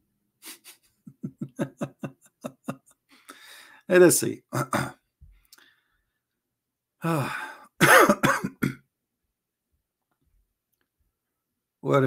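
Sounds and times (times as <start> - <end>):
man speaking: 3.8 - 5.0
man clearing throat: 4.6 - 5.0, 7.0 - 8.9.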